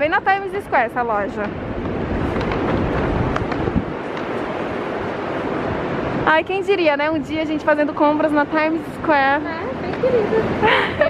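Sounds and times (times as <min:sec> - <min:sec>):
city street traffic hum: 0:00.0 - 0:11.0
wind on microphone: 0:00.0 - 0:11.0.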